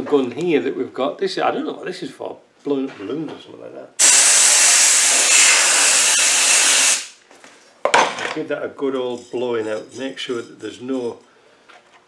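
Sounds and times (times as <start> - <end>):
air blow gun hissing: 4.0 - 7.2.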